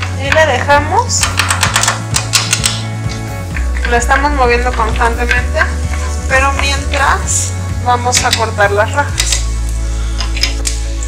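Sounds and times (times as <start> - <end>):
background music with bass line: 0.0 - 11.0
wooden spoon scraping frying pan: 3.6 - 7.4.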